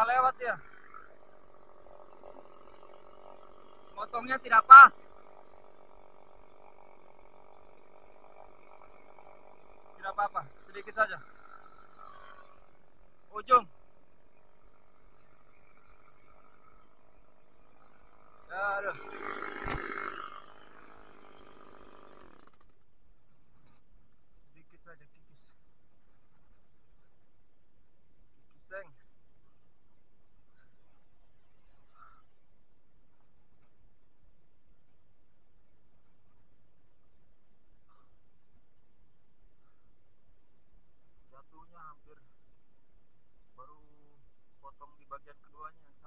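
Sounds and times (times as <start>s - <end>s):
chainsaw engine idling: 0.0s - 46.0s.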